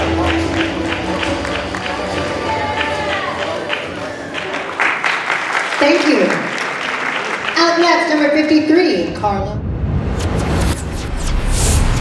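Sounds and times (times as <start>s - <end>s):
posing routine music: 0.0s - 4.3s
audience applauding and cheering: 0.0s - 8.7s.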